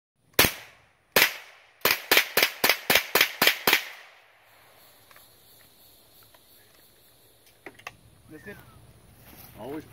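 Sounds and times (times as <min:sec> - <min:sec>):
rifle shots with echo: 0:00.4 - 0:04.2.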